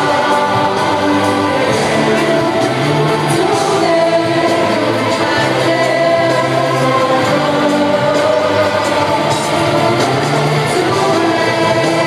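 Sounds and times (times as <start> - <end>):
live concert music: 0.0 - 12.0
singing voices: 0.0 - 12.0.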